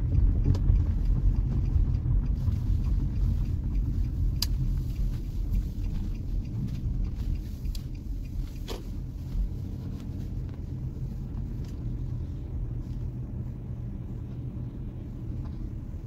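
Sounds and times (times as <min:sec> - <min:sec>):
car engine and tyre rumble: 0:00.0 - 0:16.0.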